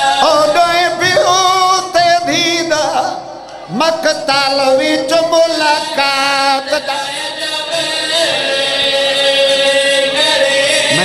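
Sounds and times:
man chanting a long note: 10.8 - 11.0.

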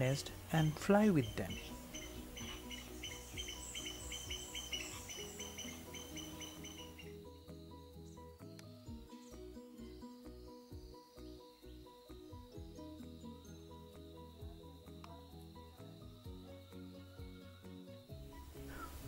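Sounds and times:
soft background music: 0.0 - 19.0
bird chirps: 0.6 - 7.3.

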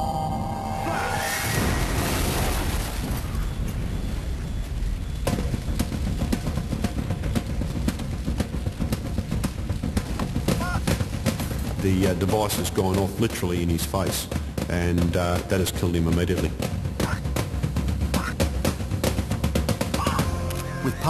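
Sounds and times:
explosion blast: 1.1 - 6.3
fire crackling and popping: 1.6 - 13.4.

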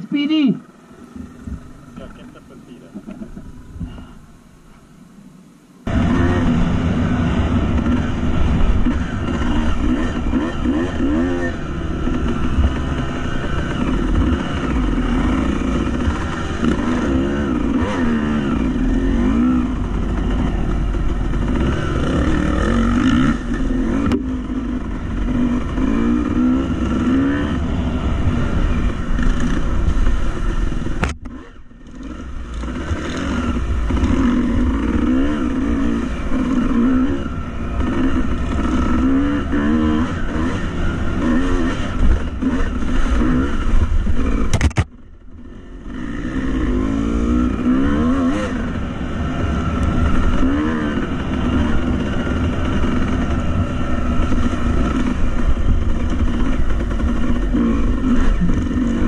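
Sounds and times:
dirt bike engine revving: 5.9 - 59.0.

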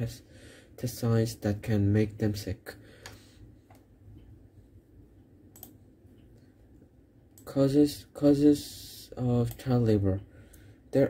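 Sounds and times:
faint low hum: 0.0 - 11.0
computer mouse clicks: 5.5 - 6.4.

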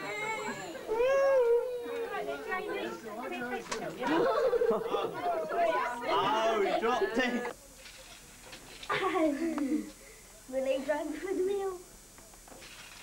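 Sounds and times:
adult and children talking: 0.0 - 7.6, 8.9 - 12.0.

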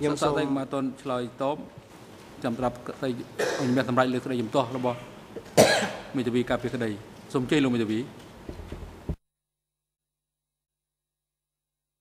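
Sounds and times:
person coughing: 3.4 - 3.9, 5.6 - 6.1.

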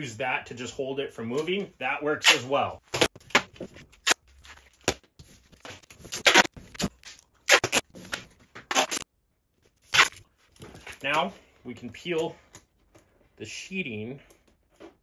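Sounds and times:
duct tape ripping: 5.8 - 9.0, 9.8 - 10.2.

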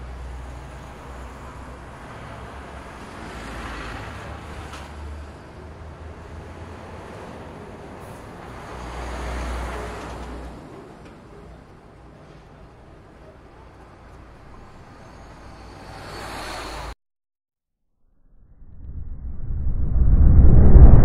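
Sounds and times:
road noise rumble: 0.0 - 17.0
vehicles passing: 0.0 - 17.0.

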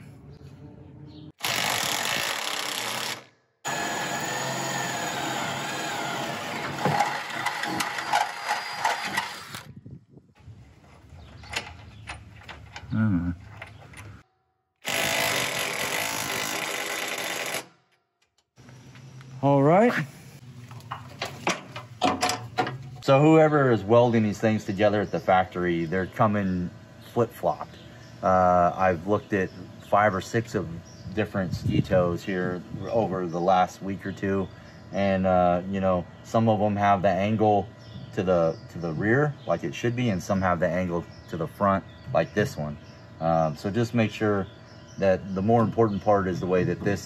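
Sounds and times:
electric drill boring into metal: 1.4 - 9.7, 14.8 - 17.7.

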